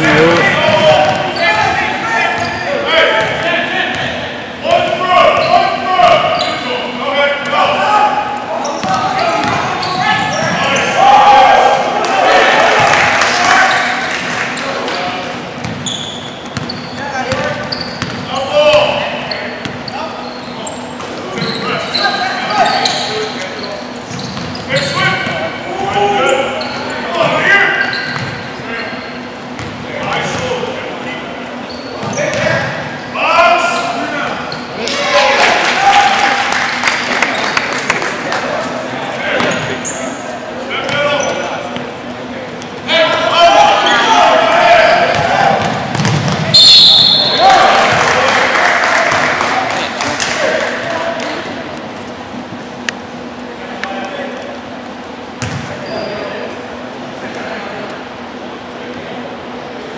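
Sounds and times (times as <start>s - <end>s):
shouts and chatter: 0.0s - 15.2s, 32.1s - 37.6s, 42.8s - 51.4s
basketball bouncing on wooden floor: 45.1s - 46.4s, 55.4s - 55.6s.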